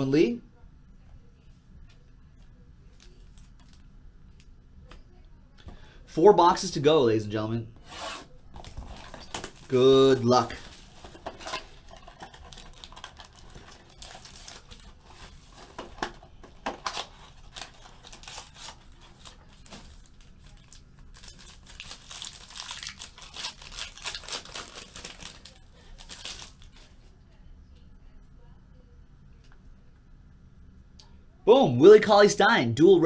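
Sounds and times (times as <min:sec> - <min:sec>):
packaging crinkling and tearing: 0:08.5 - 0:27.0.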